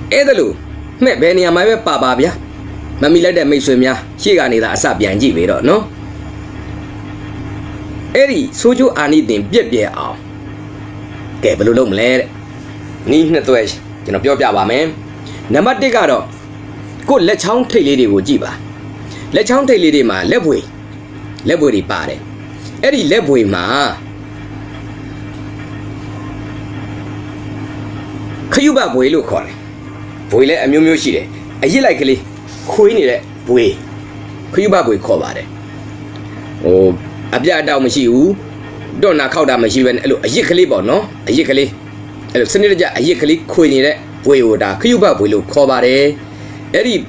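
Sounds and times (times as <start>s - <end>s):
low hum: 0.0s - 47.0s.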